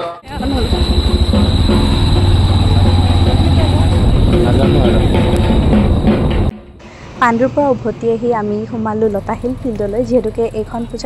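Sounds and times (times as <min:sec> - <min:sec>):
music: 0:00.0 - 0:08.4
indistinct voices: 0:00.0 - 0:11.0
low machine drone: 0:00.2 - 0:11.0.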